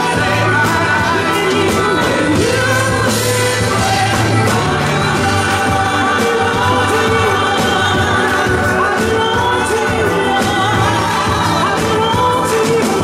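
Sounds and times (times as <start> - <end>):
gospel choir singing: 0.0 - 13.0
live instrumental accompaniment: 0.0 - 13.0.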